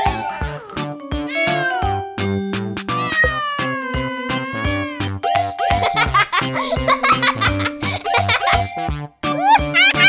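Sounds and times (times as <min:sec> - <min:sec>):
cheerful music with steady beat: 0:04.9 - 0:10.0
baby giggling: 0:05.8 - 0:08.7.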